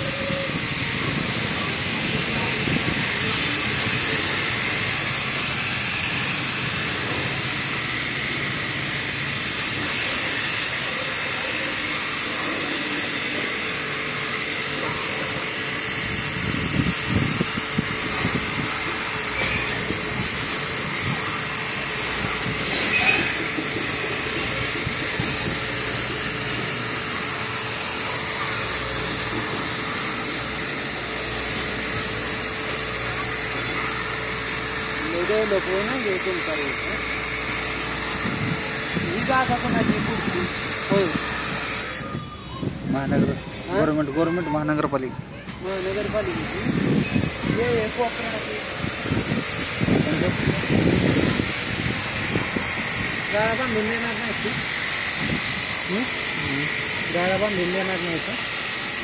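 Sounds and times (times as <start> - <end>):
pressure washer spray hissing: 0.0 - 41.8, 45.6 - 59.0
motor hum: 0.0 - 42.4, 45.5 - 59.0.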